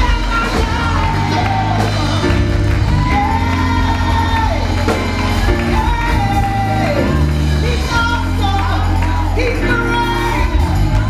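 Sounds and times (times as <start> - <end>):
choir singing gospel music: 0.0 - 11.0
steady bass line: 0.0 - 11.0.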